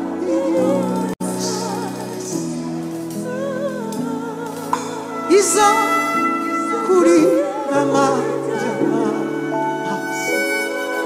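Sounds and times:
person singing with vibrato: 0:00.0 - 0:11.0.

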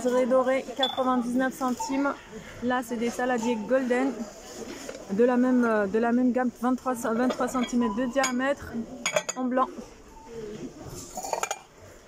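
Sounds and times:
ceramic bowls and plates clinking: 0:00.0 - 0:02.0, 0:07.0 - 0:09.7, 0:11.0 - 0:11.8.

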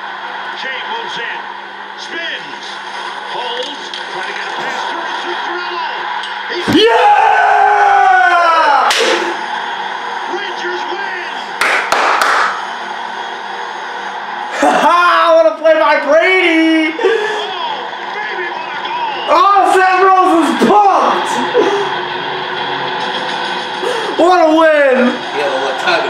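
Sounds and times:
crowd noise: 0:00.0 - 0:26.0
tv commentary: 0:00.0 - 0:26.0
sharp slaps: 0:08.9 - 0:09.2, 0:11.6 - 0:12.6.

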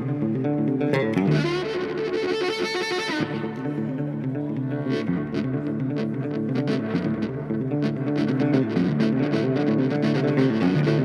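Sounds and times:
electric guitar picking notes: 0:00.0 - 0:11.0.

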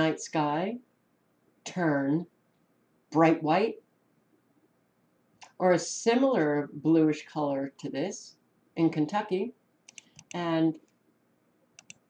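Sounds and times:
person speaking: 0:00.0 - 0:00.9, 0:01.6 - 0:02.4, 0:03.1 - 0:03.9, 0:05.4 - 0:10.9
computer mouse clicks: 0:09.9 - 0:11.0, 0:11.8 - 0:12.0.

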